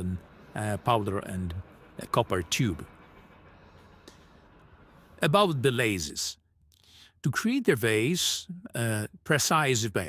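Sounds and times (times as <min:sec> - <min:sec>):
low hum: 0:00.0 - 0:09.3.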